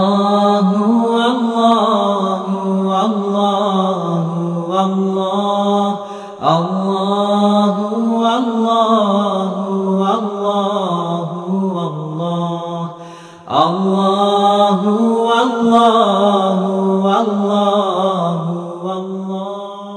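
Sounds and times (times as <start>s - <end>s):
unaccompanied vocal chant: 0.0s - 19.9s.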